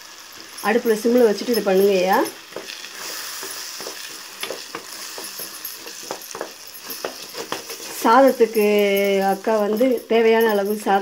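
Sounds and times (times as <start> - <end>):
masala sizzling in a pan: 0.0 - 11.0
spatula scraping and tapping pan: 0.3 - 10.2.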